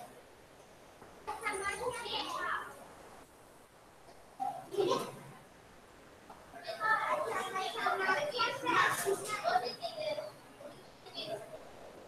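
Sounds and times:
children chattering: 0:01.3 - 0:02.8, 0:04.4 - 0:05.3, 0:06.6 - 0:11.6.

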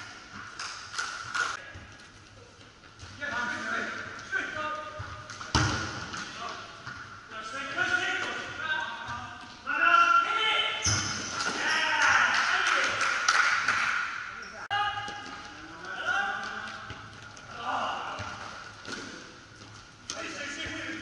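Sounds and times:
players calling and shouting: 0:01.0 - 0:21.0.

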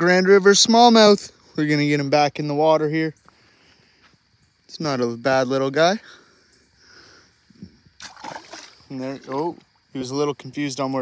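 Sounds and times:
fish splashing in shallow river: 0:07.9 - 0:09.5.

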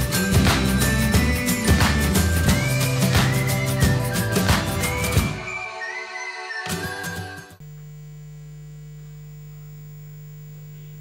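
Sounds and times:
music: 0:00.0 - 0:07.6
electrical mains hum: 0:07.6 - 0:11.0.

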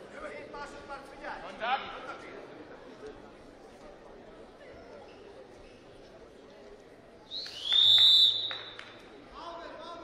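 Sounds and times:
referee's whistle blast: 0:07.3 - 0:08.8.

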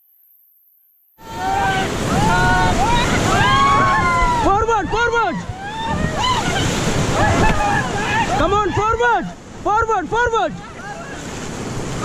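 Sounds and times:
people shouting: 0:01.2 - 0:09.4
whitewater rapids rushing: 0:01.2 - 0:12.0.

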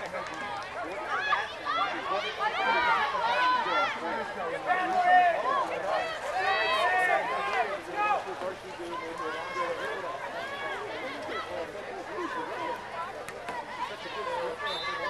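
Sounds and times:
people shouting and calling out: 0:00.0 - 0:15.0.

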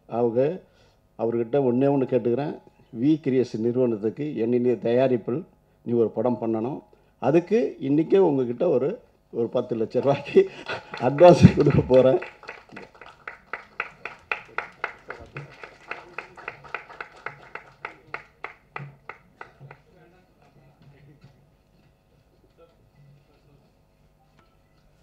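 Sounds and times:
faint background music: 0:00.0 - 0:12.4, 0:14.5 - 0:25.0
hand clapping: 0:10.0 - 0:20.6.

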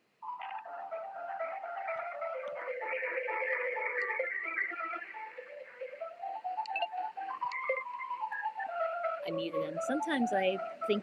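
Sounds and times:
telephone hold music: 0:00.2 - 0:11.0.

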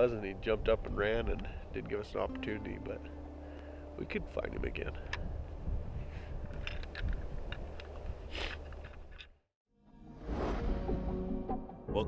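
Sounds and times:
clicks and rustles: 0:06.4 - 0:09.4.

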